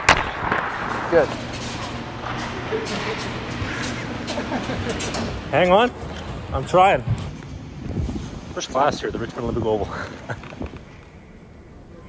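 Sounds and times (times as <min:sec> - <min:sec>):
sharp crack: 0:00.0 - 0:02.6
electric cart humming: 0:00.0 - 0:07.9.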